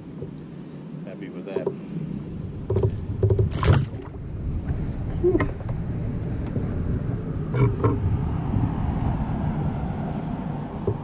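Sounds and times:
low rumble: 0:01.9 - 0:11.0
short knocks on kayak: 0:02.7 - 0:04.1.

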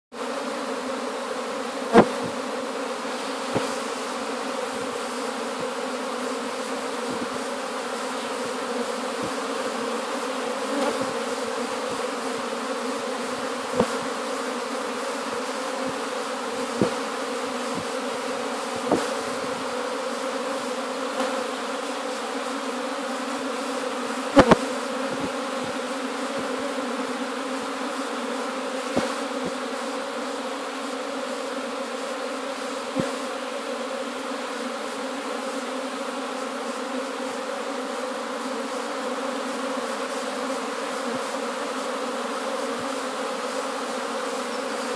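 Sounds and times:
bees humming: 0:00.2 - 0:44.9.

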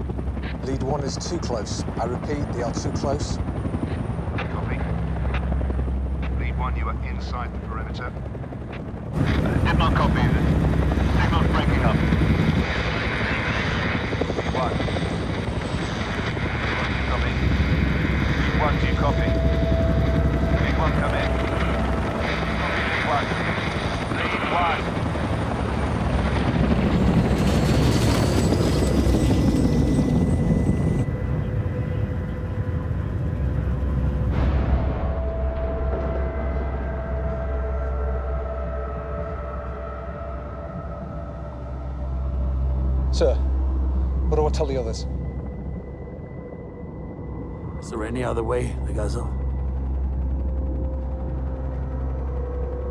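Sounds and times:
helicopter rotor and engine: 0:00.0 - 0:52.9.

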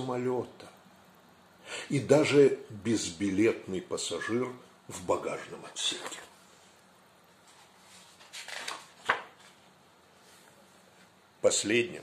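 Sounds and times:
paper pages rustling: 0:07.4 - 0:11.2.

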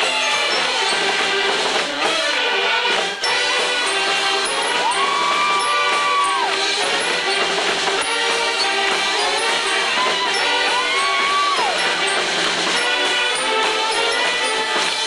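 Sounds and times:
string band playing banjos and saxophones: 0:00.0 - 0:15.0.

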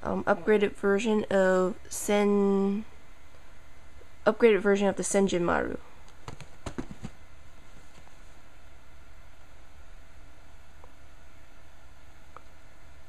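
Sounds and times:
low room hum: 0:00.0 - 0:13.0
cardboard boxes clicking and tapping: 0:06.2 - 0:07.2.

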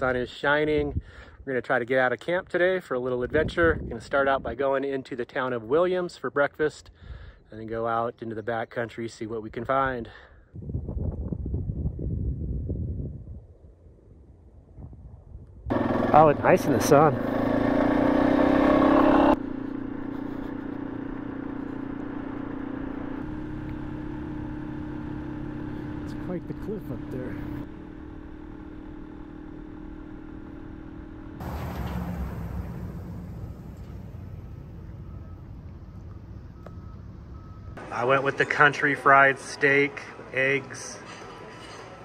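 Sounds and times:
wind noise: 0:03.2 - 0:04.6, 0:10.6 - 0:15.7
motorcycle engine cruising: 0:15.7 - 0:40.4.

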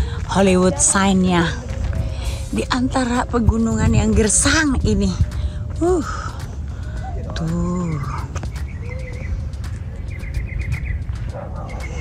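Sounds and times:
steady low rumble: 0:00.0 - 0:12.0
small bird chirping: 0:07.9 - 0:12.0.

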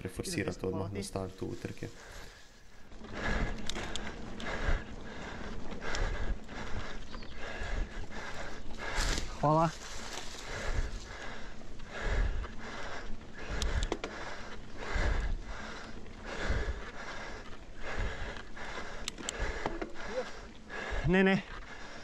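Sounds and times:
bike tyres rumbling on dirt trail: 0:01.5 - 0:22.0
bike rattling: 0:01.6 - 0:22.0
rider breathing hard: 0:01.7 - 0:22.0.

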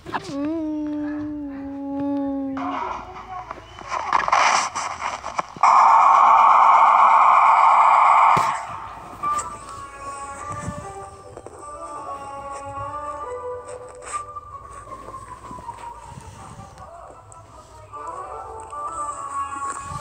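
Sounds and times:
person humming: 0:00.0 - 0:02.6
loud steady rushing hiss: 0:03.8 - 0:09.0
soft music: 0:09.0 - 0:20.0.

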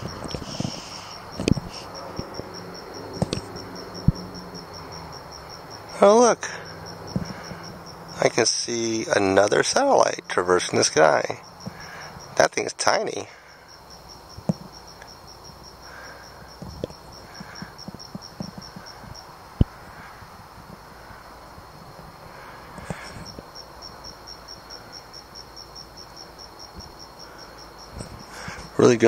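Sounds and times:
crickets chirping: 0:00.0 - 0:29.0.

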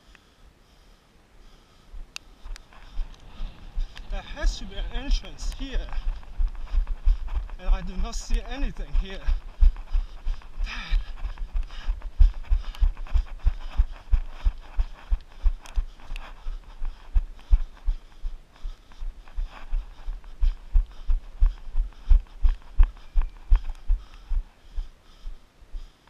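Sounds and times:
running footsteps on pavement: 0:01.9 - 0:26.0.

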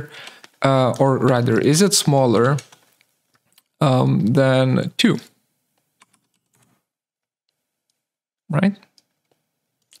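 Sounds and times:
computer keyboard keystrokes: 0:06.0 - 0:06.7.

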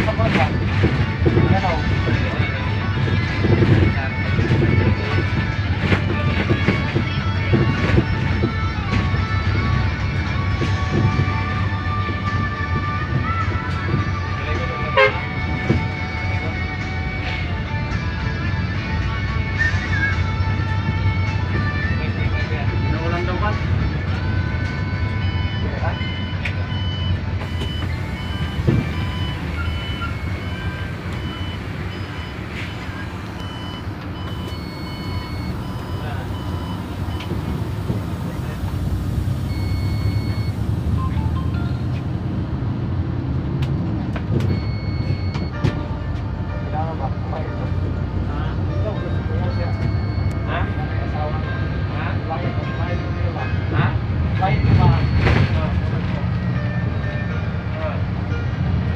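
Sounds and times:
bus engine and road rumble: 0:00.0 - 0:58.9
short high beep: 0:27.5 - 0:37.6, 0:39.5 - 0:42.1, 0:49.4 - 0:50.7.

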